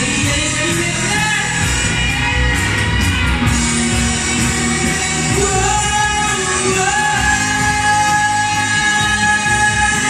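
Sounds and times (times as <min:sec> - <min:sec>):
man singing into a microphone: 0:00.0 - 0:02.0, 0:03.9 - 0:10.0
accompanying music: 0:00.0 - 0:10.0.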